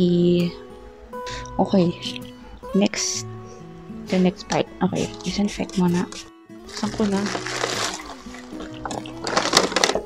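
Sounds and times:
soft instrumental music: 0:00.0 - 0:10.0.

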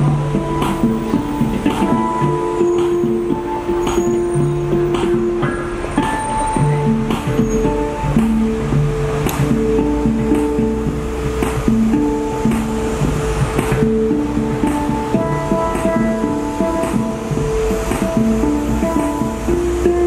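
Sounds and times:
handpan melody: 0:00.0 - 0:20.0.

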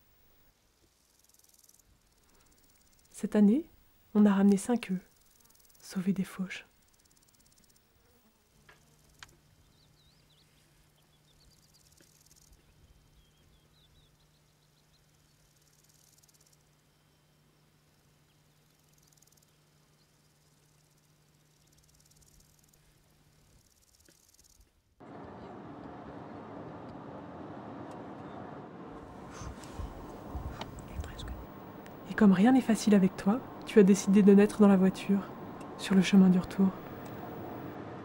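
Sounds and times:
insects stridulating: 0:00.0 - 0:10.3, 0:11.1 - 0:25.2, 0:29.1 - 0:37.8
faint low hum: 0:01.8 - 0:38.0.

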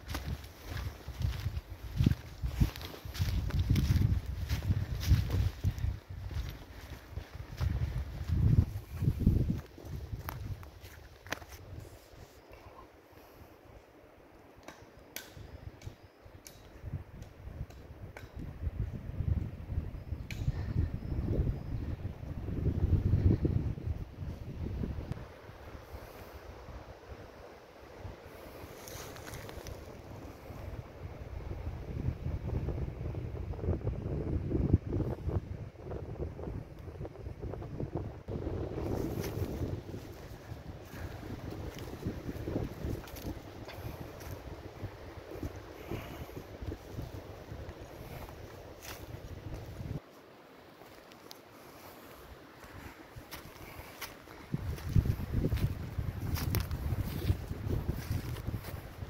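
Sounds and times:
footsteps on dry leaves: 0:00.0 - 0:12.0, 0:28.6 - 0:30.0, 0:38.7 - 0:44.5, 0:50.8 - 0:59.0
wind buffeting microphone: 0:00.0 - 0:12.2, 0:16.7 - 0:50.0, 0:51.8 - 0:59.0.

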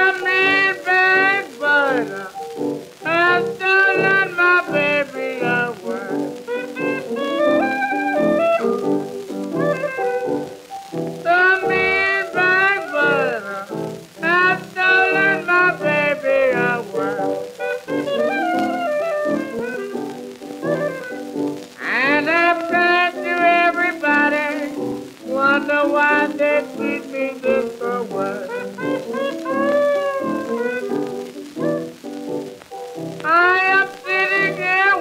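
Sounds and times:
blues piano playing: 0:00.0 - 0:35.0.

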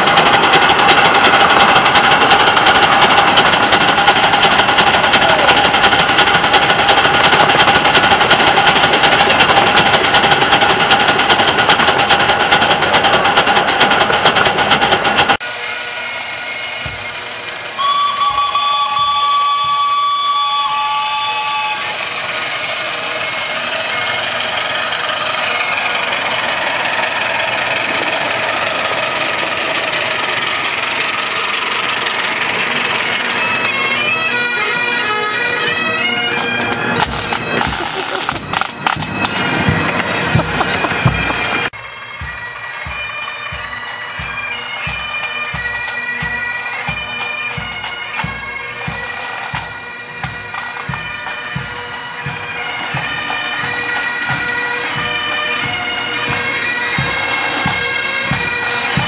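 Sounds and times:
miniature steam locomotive running: 0:00.0 - 0:59.0
train passing: 0:00.0 - 0:59.0
steam whistle blowing: 0:15.4 - 0:31.8, 0:34.5 - 0:41.3.

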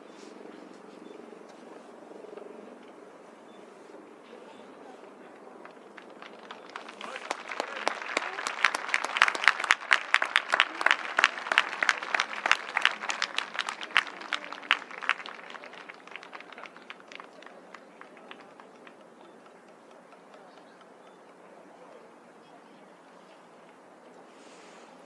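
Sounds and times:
crowd clapping: 0:05.2 - 0:21.5.

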